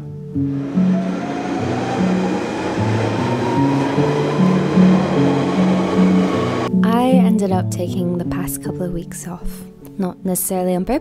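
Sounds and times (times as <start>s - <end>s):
faint rising whine: 0.4s - 6.7s
train rushing past platform: 0.4s - 6.7s.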